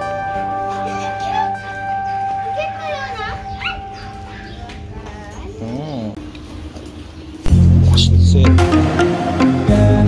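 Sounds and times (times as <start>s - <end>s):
background music: 0.0s - 4.0s, 7.5s - 10.0s
dog yelping: 2.0s - 4.7s.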